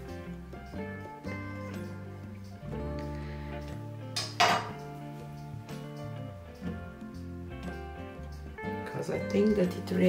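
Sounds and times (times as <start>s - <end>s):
background music with steady tones: 0.0s - 10.0s
palette knife clattering on table: 4.2s - 4.8s.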